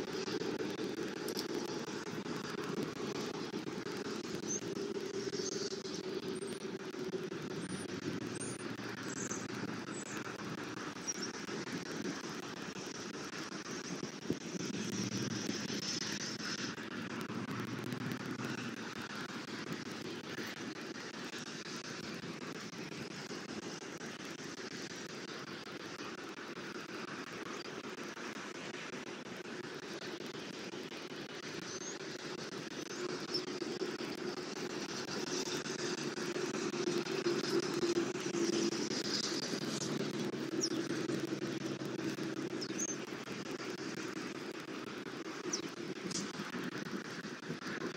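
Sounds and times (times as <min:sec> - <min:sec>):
light hiss: 0:00.0 - 0:47.9.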